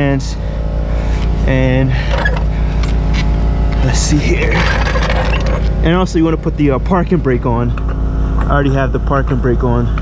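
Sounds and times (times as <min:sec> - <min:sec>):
loud low rumble: 0:00.0 - 0:10.0.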